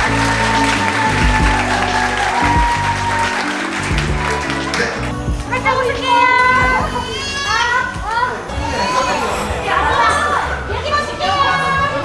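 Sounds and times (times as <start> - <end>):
indistinct chatter of people: 4.5 - 12.0
children's high voices: 5.6 - 12.0.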